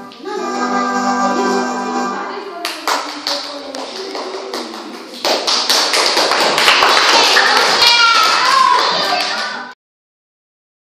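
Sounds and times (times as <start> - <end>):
audience applause: 3.2 - 9.7.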